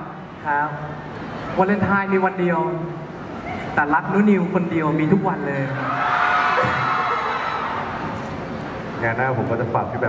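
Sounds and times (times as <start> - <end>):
crowd squealing and screaming: 5.7 - 8.4.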